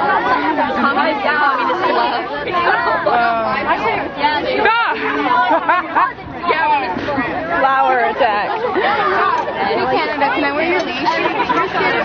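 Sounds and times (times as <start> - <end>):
group of people chattering: 0.0 - 12.0.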